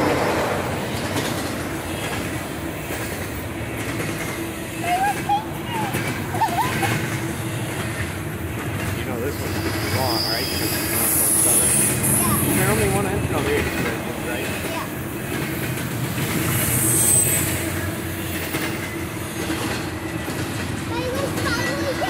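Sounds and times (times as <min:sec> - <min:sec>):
freight train wheels rumbling: 0:00.0 - 0:22.0
high wheel squeals: 0:09.1 - 0:13.5, 0:16.3 - 0:20.4.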